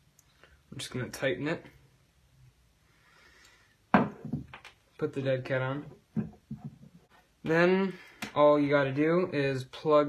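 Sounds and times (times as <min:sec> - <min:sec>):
knock on wooden table: 0:03.9 - 0:04.6.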